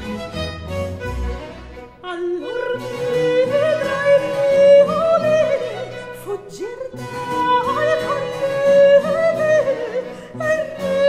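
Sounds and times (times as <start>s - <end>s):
chamber ensemble accompaniment: 0.0s - 11.0s
soprano singing with vibrato: 2.0s - 11.0s.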